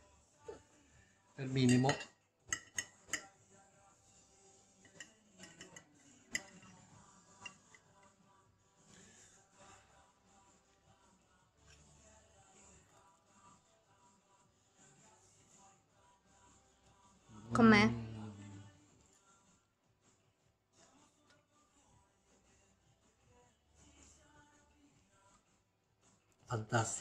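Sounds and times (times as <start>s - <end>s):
fork clicking against dish: 4.9s - 6.8s.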